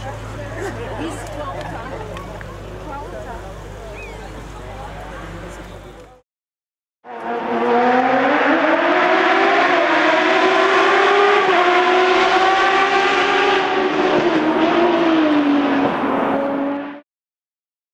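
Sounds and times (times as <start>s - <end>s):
racing car engine at high revs: 7.0s - 17.0s.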